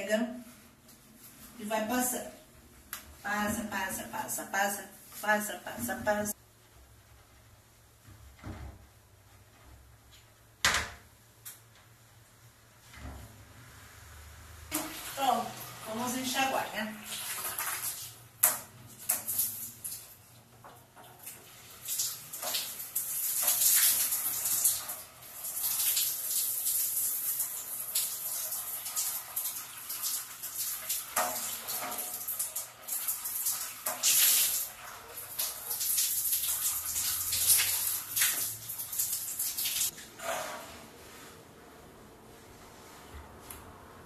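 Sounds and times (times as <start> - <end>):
shower spray hissing on glass: 14.1 - 20.2, 21.2 - 40.0.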